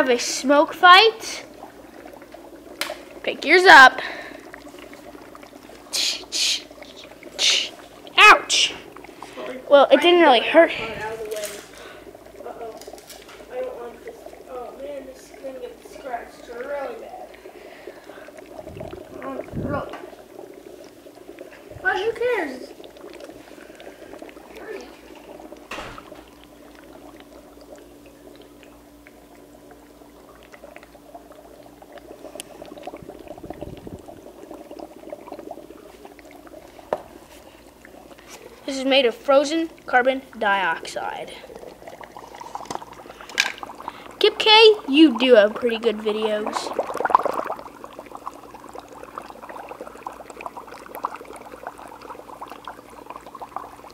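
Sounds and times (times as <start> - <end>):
dry ice bubbling in water: 0.0 - 53.9.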